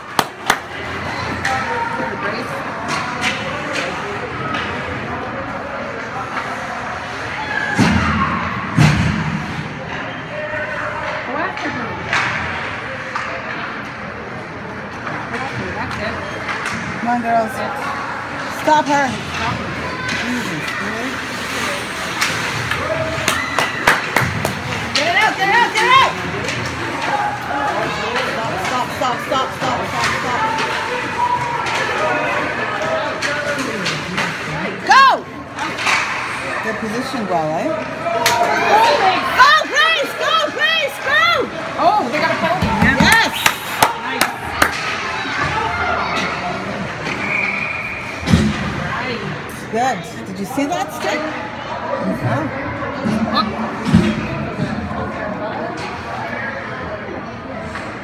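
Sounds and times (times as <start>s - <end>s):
arena noise: 0.0s - 58.0s
spectators shouting in ice rink: 0.0s - 58.0s
voices shouting: 37.8s - 48.2s.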